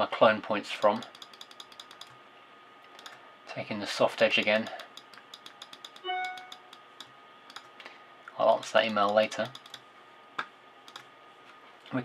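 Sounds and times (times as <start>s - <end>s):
computer keyboard clicks: 0.8s - 2.2s, 4.6s - 7.7s, 8.8s - 9.8s, 10.9s - 11.1s
email notification chime: 6.1s - 6.6s.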